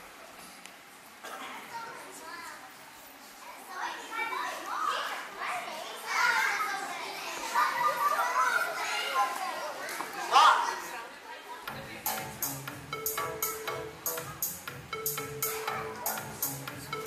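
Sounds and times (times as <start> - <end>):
young children talking and calling out: 1.2 - 11.7.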